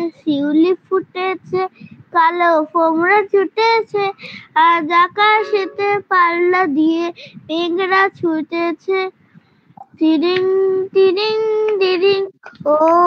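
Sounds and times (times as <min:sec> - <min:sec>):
child singing: 0:00.0 - 0:09.1, 0:09.9 - 0:13.0.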